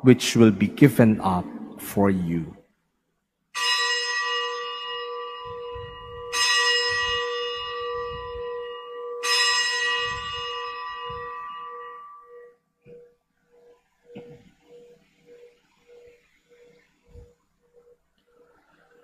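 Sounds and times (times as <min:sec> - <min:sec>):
low wavering hum: 0:00.0 - 0:02.7, 0:04.9 - 0:09.2
bell ringing: 0:03.6 - 0:12.6.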